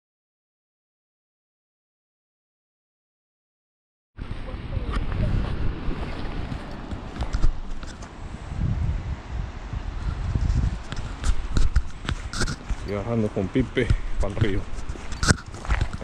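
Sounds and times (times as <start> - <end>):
footsteps on trail: 5.0 - 8.2, 10.1 - 16.0.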